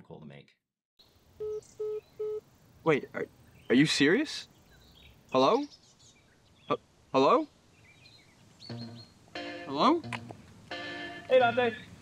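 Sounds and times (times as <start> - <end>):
short phone beeps: 1.4 - 2.4.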